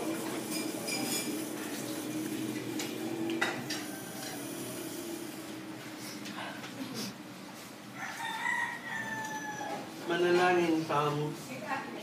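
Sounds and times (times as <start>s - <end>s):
rooster crowing: 3.5s - 5.2s, 7.9s - 10.0s.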